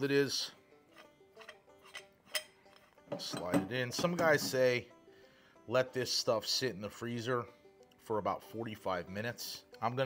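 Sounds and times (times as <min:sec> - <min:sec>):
faint background music: 0:00.0 - 0:10.0
metal parts clinking: 0:01.0 - 0:03.6.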